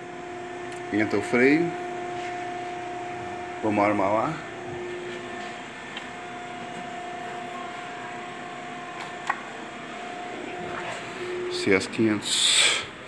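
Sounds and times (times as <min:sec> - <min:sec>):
electrical hum: 0:00.0 - 0:13.0
faint held tone: 0:04.4 - 0:12.6.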